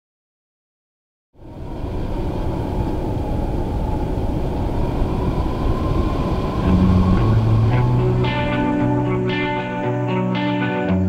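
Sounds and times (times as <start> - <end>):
faint steady whine: 1.4 - 11.0
race car engine rumble: 2.8 - 9.7
music: 6.6 - 11.0.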